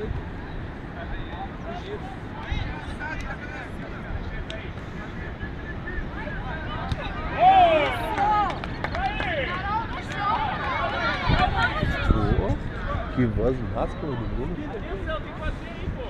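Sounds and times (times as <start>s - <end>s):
people shouting and calling out: 1.0s - 16.0s.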